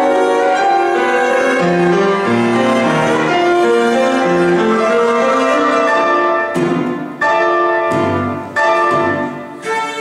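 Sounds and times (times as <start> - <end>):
cello: 0.0 - 10.0
piano chords: 0.0 - 10.0.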